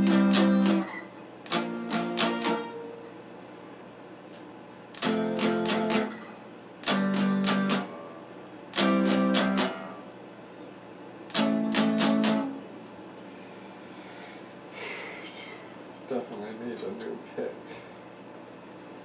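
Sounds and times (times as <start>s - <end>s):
electric guitar strumming chord: 0.0s - 0.9s, 1.5s - 3.0s, 5.0s - 6.2s, 6.8s - 10.0s, 11.3s - 12.6s.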